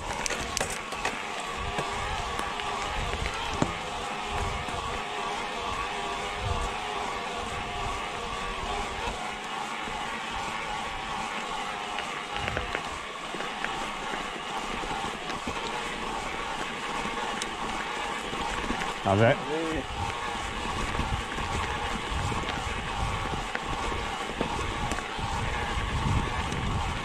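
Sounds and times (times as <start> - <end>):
bike tyres on gravel: 0.0 - 27.0.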